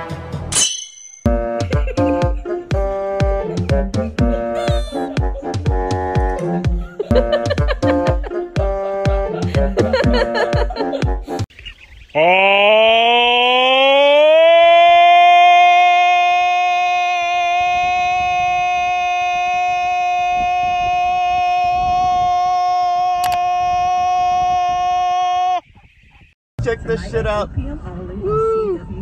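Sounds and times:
sharp click: 23.2 - 23.4.

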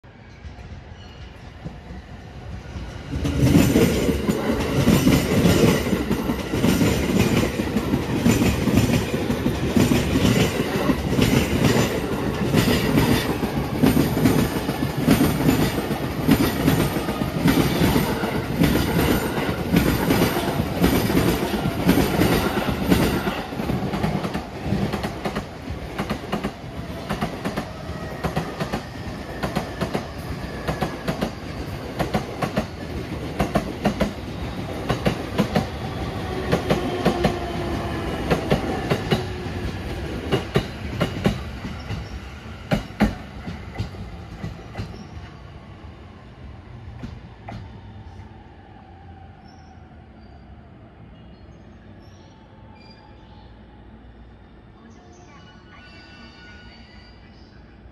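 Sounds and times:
train wheels clicking over rail joints: 42.7 - 45.1.

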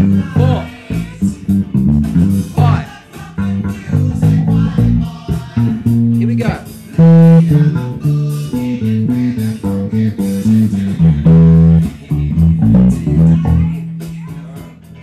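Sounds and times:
backing track with drums: 0.0 - 15.0
electric bass funk groove: 0.0 - 15.0.

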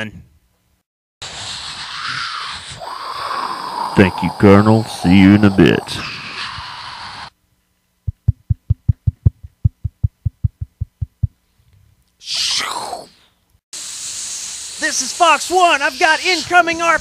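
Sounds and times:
cartoon hiss: 1.2 - 7.4, 12.2 - 17.0
steady jet-like hiss: 1.2 - 7.4, 13.8 - 17.0
low even thumps: 8.0 - 11.4.

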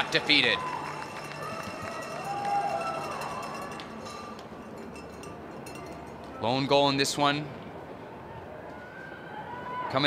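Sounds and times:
low steady background noise: 0.0 - 10.0.

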